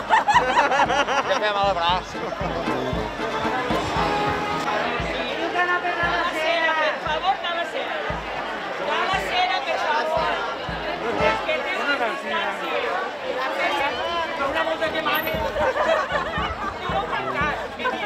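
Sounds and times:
low thumps: 0.0s - 6.4s, 7.0s - 11.7s
people chattering and calling out: 0.0s - 18.0s.

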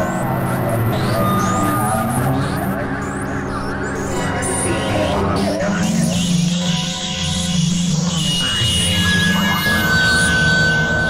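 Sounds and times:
synthesizer drone music: 0.0s - 11.0s.

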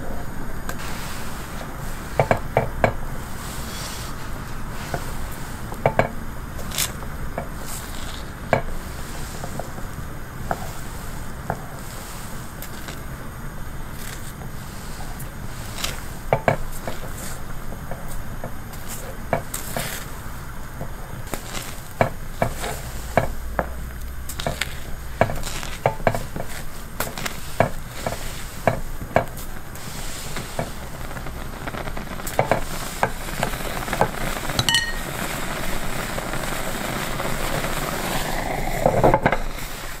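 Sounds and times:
steady sizzle: 0.0s - 40.0s
ringing clink: 34.6s - 35.1s
spoon knocking against pot: 34.6s - 35.1s.

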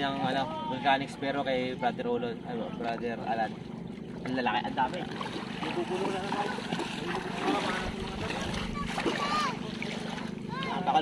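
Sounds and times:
steady low hum: 0.0s - 11.0s
wading splashes in water: 0.0s - 11.0s
voices calling out: 5.4s - 11.0s.

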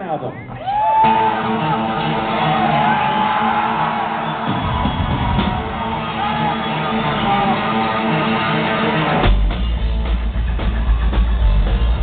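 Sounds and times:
crowd whooping and cheering: 0.4s - 9.3s, 10.3s - 12.0s
live rockabilly band: 4.4s - 12.0s.

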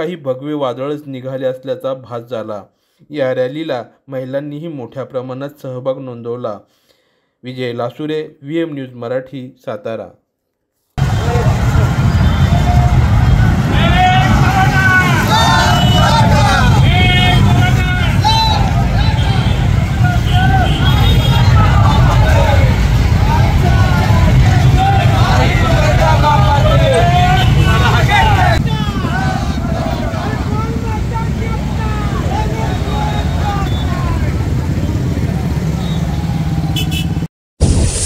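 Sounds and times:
crowd calling and talking: 11.0s - 36.8s
motorcycle engines running: 11.0s - 37.2s.

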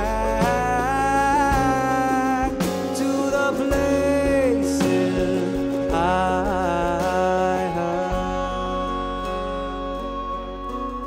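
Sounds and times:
live band music: 0.0s - 11.0s
man singing a held note: 0.0s - 11.0s.

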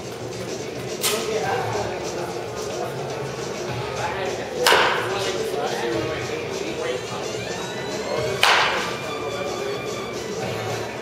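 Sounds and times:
background music: 0.0s - 11.0s
baseball bat cracking ball: 4.7s - 5.1s, 8.4s - 9.0s.

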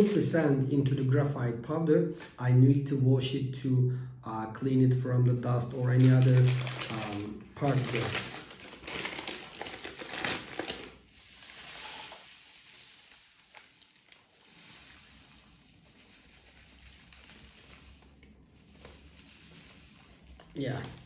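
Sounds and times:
paper bag crinkling: 0.0s - 0.4s, 5.6s - 21.0s
sand pouring into glass: 11.1s - 21.0s.

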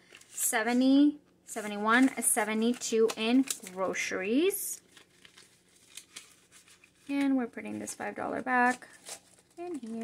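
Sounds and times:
paper banknotes rustling: 0.0s - 0.8s, 1.6s - 10.0s
plastic envelope being handled: 0.0s - 0.8s, 1.6s - 10.0s.

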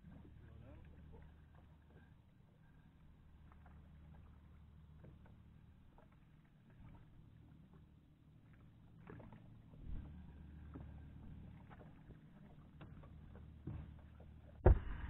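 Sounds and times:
dull bump on boat: 13.6s - 15.0s
low rumble: 14.5s - 15.0s.

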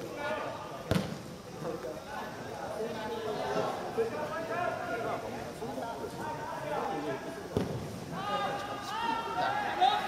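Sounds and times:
football thud: 0.9s - 1.2s, 7.6s - 7.8s.

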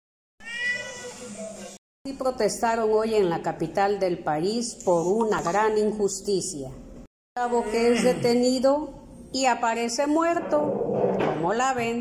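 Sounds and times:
cat meowing: 0.4s - 1.3s.

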